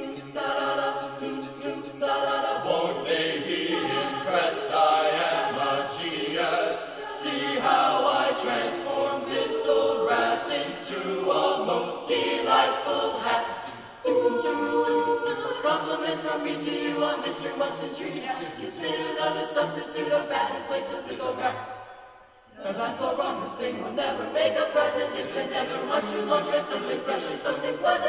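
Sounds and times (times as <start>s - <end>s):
choir singing a cappella: 0.0s - 28.0s.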